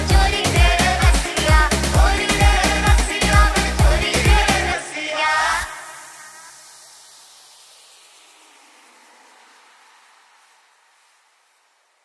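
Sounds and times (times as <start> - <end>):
hiss-like wash of dance music: 0.0 - 12.0.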